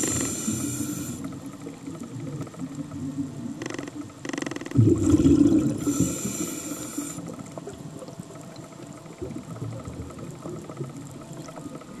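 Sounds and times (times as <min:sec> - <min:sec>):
underwater air bubbling: 0:04.7 - 0:12.0.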